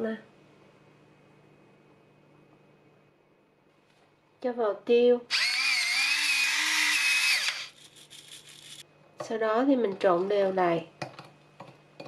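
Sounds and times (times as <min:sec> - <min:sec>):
electric pepper grinder whining: 0:05.3 - 0:08.8.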